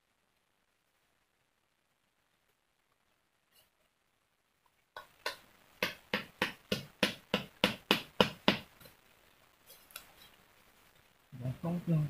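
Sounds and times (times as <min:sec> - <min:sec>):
hand tool knocking on wood: 0:05.0 - 0:08.7.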